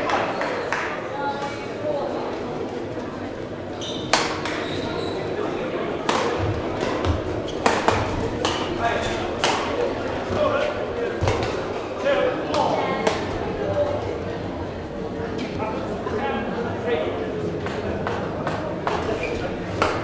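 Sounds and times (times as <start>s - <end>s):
rackets hitting shuttlecock: 4.1s - 4.7s, 6.0s - 10.4s.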